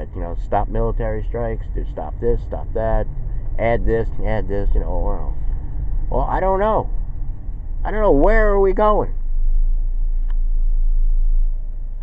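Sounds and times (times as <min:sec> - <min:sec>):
car cabin rumble: 0:00.0 - 0:12.0
faint click: 0:10.2 - 0:10.4.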